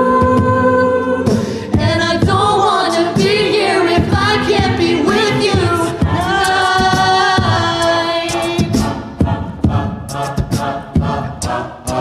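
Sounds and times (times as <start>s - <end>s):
a cappella group singing: 0.0s - 12.0s
beatboxing vocal percussion: 4.0s - 12.0s.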